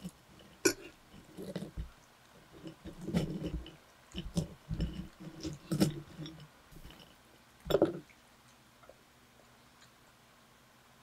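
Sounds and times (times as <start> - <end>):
soft wet chewing: 0.0 - 10.2.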